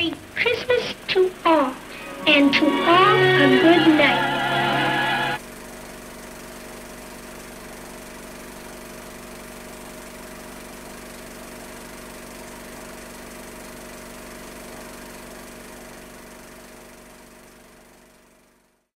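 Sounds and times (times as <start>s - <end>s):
hum: 0.0s - 5.4s.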